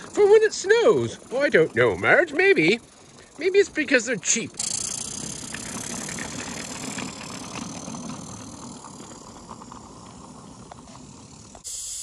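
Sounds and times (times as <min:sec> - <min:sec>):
steam locomotive hissing: 0:00.0 - 0:12.0.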